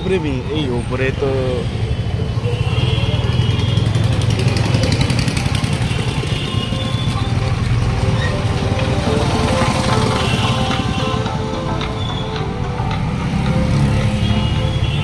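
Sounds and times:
surrounding traffic noise: 0.0 - 15.0
motorcycle engine rumble: 2.0 - 14.6.

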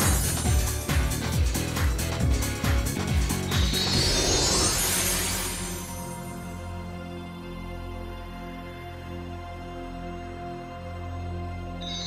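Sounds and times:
background music: 0.0 - 12.0
shimmering magic sweep: 3.4 - 7.0.

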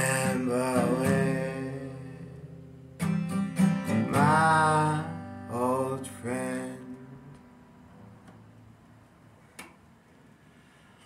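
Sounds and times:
acoustic guitar low note: 0.0 - 8.5.

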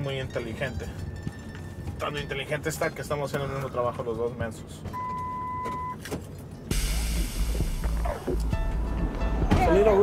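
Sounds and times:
loud outdoor noise with rumble: 6.0 - 10.0
censor bleep tone: 6.7 - 8.7
background music: 6.7 - 10.0.

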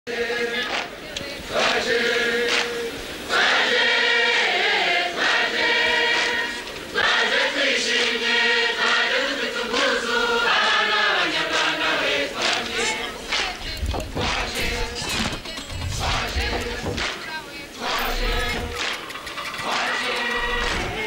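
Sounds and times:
group singing chant-like song: 0.1 - 21.0.

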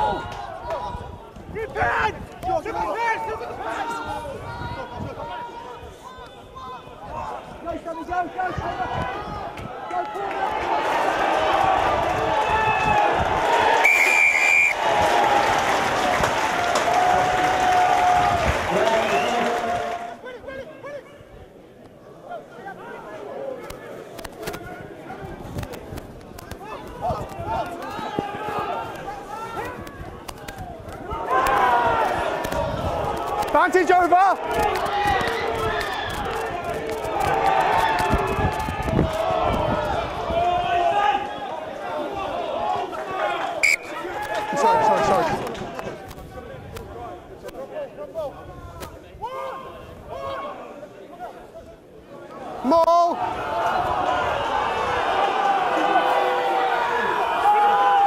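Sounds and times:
crowd noise: 0.0 - 58.0
players shouting calls: 26.5 - 45.8.

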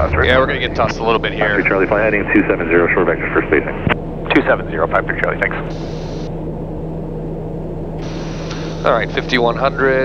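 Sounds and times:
turboprop cockpit drone: 0.0 - 10.0.

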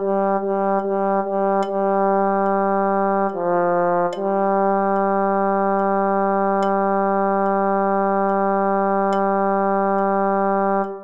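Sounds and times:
metronome clicks: 1.6 - 2.6, 3.2 - 11.0.

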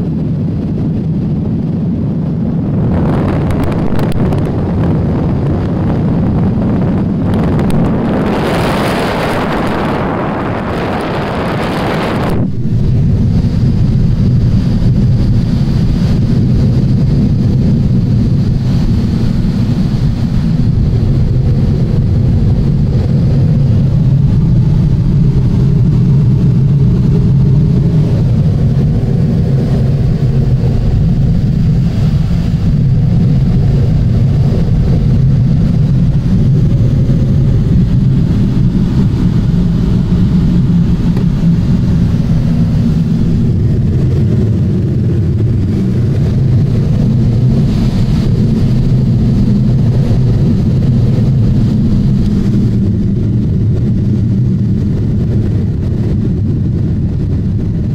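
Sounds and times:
airflow rushing in cockpit: 0.0 - 57.9.

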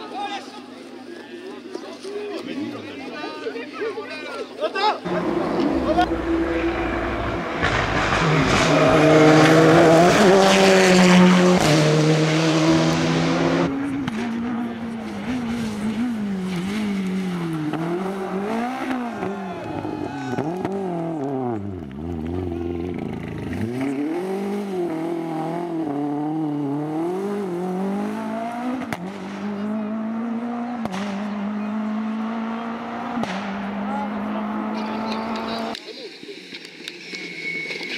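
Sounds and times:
rally car engine revving: 5.0 - 35.8.

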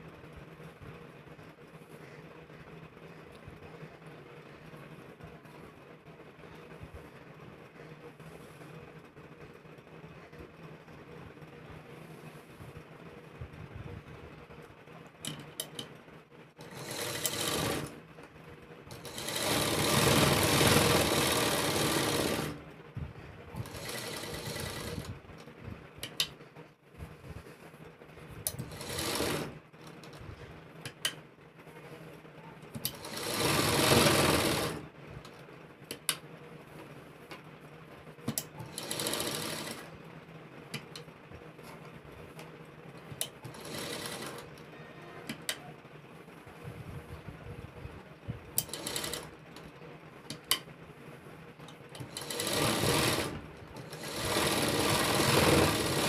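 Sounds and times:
sewing machine stitching fabric: 16.6 - 18.0, 18.9 - 22.7, 23.5 - 25.2, 28.5 - 30.2, 32.7 - 34.9, 38.2 - 40.0, 43.1 - 45.7, 48.5 - 50.6, 51.7 - 56.0.

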